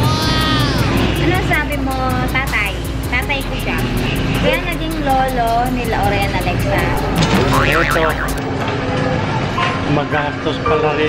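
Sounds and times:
voices: 4.5s - 8.5s.

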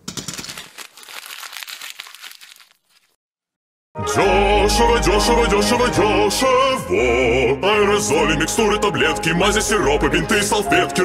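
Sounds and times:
tablets spilling out of box: 0.0s - 3.1s.

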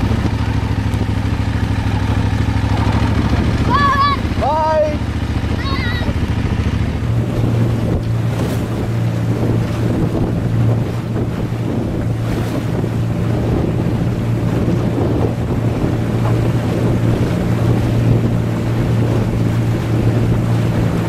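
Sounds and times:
outboard motor humming: 0.0s - 21.0s
water rushing past hull: 0.0s - 21.0s
wind buffeting microphone: 0.0s - 21.0s.

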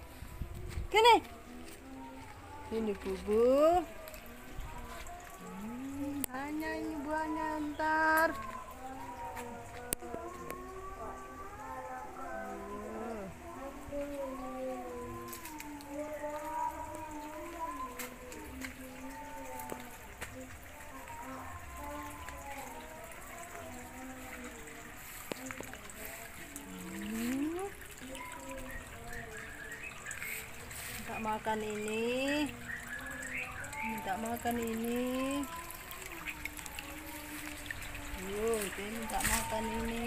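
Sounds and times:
person singing: 0.0s - 40.0s
quiet music: 0.0s - 40.0s.

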